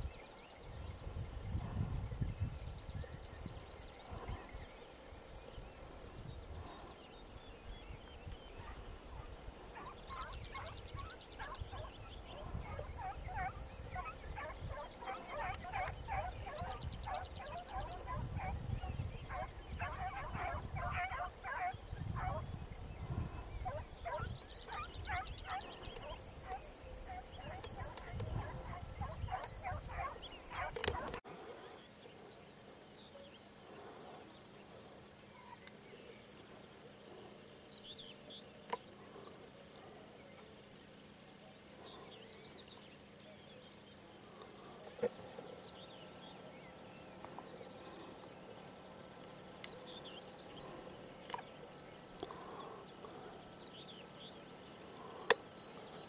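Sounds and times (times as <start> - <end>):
birds calling rapid repeated notes: 8.0 - 22.4, 23.1 - 31.2.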